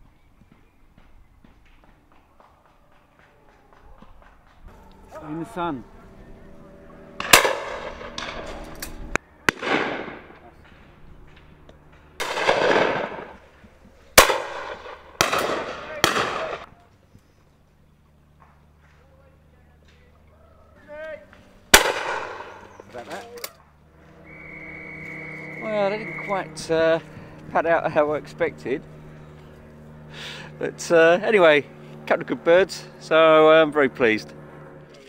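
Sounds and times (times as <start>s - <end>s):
shotgun shots with echo: 7.2s - 8.5s, 9.5s - 10.4s, 12.2s - 13.4s, 14.2s - 16.7s, 21.7s - 22.7s.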